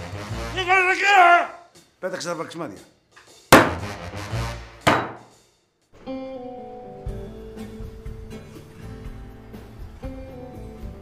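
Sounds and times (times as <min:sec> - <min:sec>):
hard rusks striking a man: 0:03.5 - 0:03.8.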